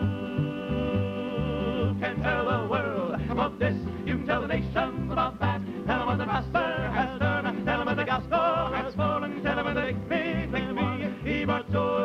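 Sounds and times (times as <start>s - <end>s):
male vocal harmony singing: 0.0s - 12.0s
steady bass line: 0.0s - 12.0s.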